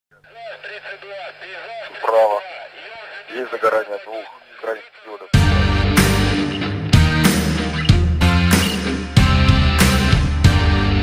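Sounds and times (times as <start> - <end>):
person speaking on old radio: 0.1 - 5.4.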